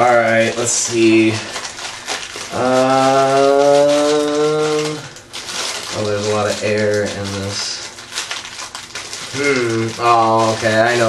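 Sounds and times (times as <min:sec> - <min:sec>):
person speaking: 0:00.0 - 0:01.6, 0:02.4 - 0:05.2, 0:05.9 - 0:07.9, 0:09.3 - 0:11.0
foil bag crinkling: 0:00.0 - 0:11.0.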